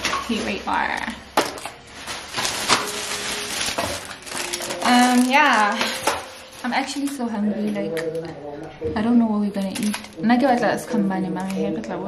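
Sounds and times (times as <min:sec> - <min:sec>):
plastic bag rustling: 0:00.0 - 0:07.8, 0:09.6 - 0:11.8.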